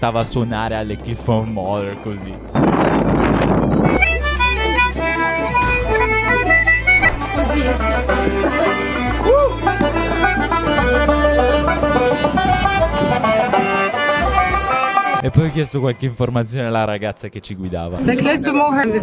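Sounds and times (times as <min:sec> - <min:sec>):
wind rumbling on microphone: 0:00.0 - 0:04.3, 0:11.9 - 0:13.9
fiddle playing folk tune: 0:00.4 - 0:16.6.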